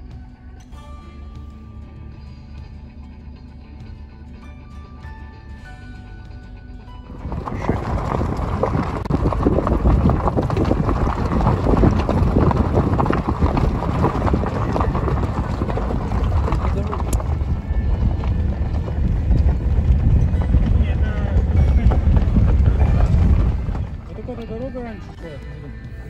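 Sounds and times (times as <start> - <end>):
background music: 0.0 - 9.1, 17.5 - 26.0
car road rumble: 0.0 - 26.0
wind buffeting microphone: 7.0 - 25.2.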